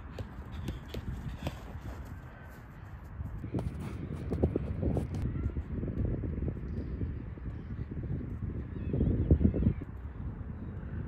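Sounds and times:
football tapped between boots: 0.0 - 1.7.

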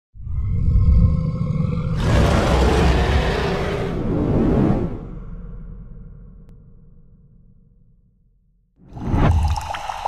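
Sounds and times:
deep rumble with held tones: 0.2 - 8.8.

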